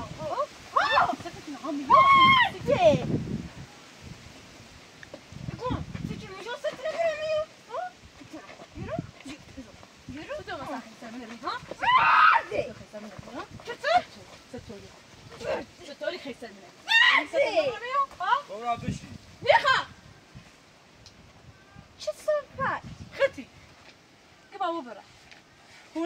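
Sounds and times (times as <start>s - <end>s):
women shouting in a quarrel: 0.0s - 3.1s, 11.6s - 12.8s, 16.8s - 18.1s, 19.4s - 20.0s.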